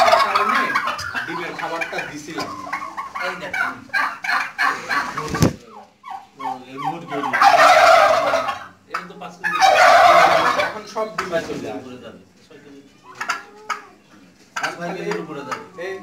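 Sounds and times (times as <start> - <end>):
turkeys gobbling: 0.0 - 11.6, 13.0 - 15.8.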